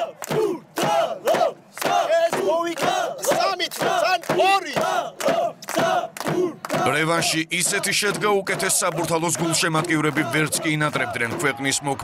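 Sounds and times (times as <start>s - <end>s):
crowd shouting a chant: 0.0s - 12.0s.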